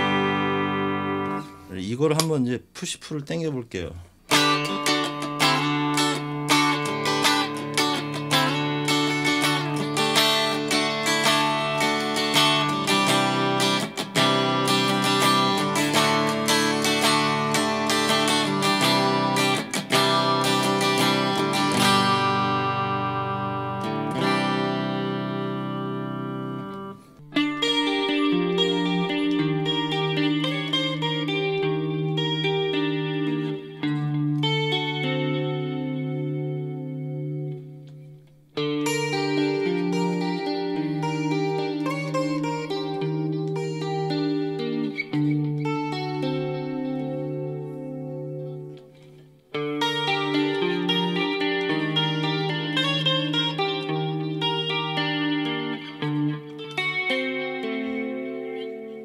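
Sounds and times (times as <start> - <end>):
clean electric guitar: 0.0 - 59.0.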